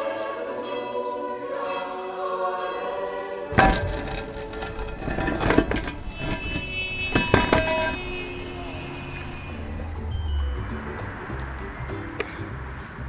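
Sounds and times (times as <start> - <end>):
manhole cover scraping and clanking: 3.5 - 11.0
ringing metallic knocks: 3.6 - 10.7
background music: 8.7 - 13.0.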